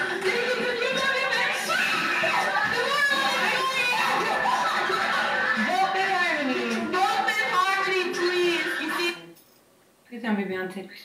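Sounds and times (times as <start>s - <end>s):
background music: 0.0s - 9.2s
young women talking: 0.0s - 9.3s.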